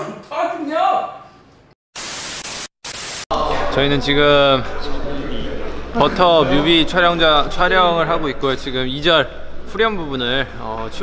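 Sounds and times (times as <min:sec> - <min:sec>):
television static hiss: 0:02.0 - 0:03.2.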